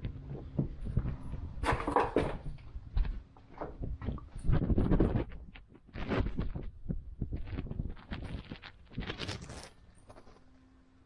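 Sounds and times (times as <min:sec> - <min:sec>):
footsteps: 0:00.0 - 0:10.5.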